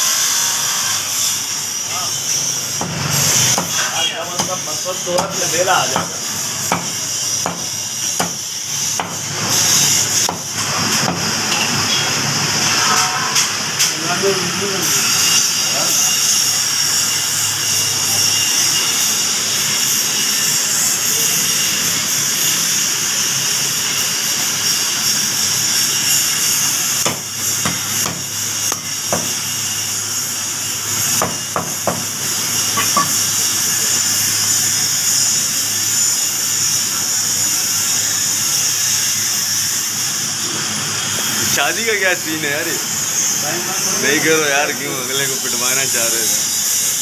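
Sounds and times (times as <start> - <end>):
loud steady hiss: 0.0 - 47.0.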